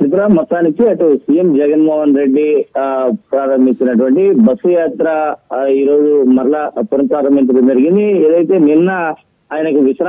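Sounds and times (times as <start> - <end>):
man narrating: 0.0 - 10.0.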